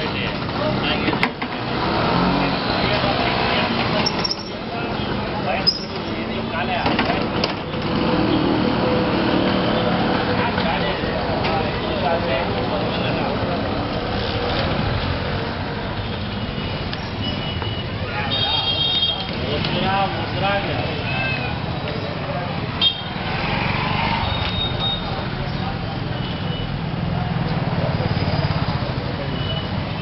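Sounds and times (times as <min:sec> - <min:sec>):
people talking: 0:00.0 - 0:23.4, 0:24.0 - 0:30.0
steady traffic noise: 0:00.0 - 0:30.0
motor scooters passing: 0:00.1 - 0:30.0
motor scooter passing: 0:22.5 - 0:26.1.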